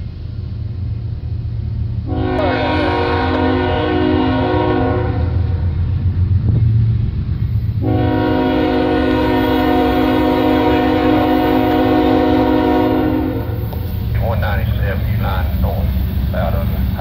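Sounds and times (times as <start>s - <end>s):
diesel locomotive rumble: 0.0s - 17.0s
train air horn: 2.1s - 5.6s, 7.8s - 13.9s.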